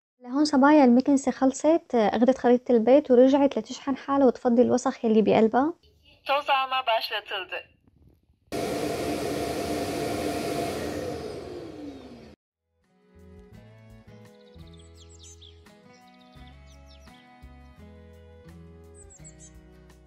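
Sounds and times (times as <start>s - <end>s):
suction motor whirring: 8.6s - 12.4s
background music: 12.8s - 20.0s.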